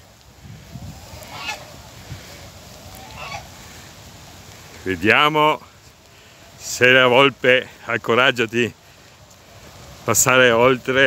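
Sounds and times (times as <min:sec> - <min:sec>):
geese honking: 0:00.6 - 0:07.0.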